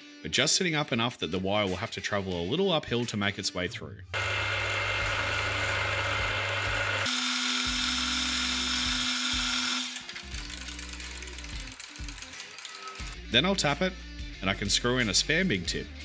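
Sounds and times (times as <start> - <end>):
drill whirring into steel: 4.2 - 13.2
background music with bass: 13.0 - 16.0.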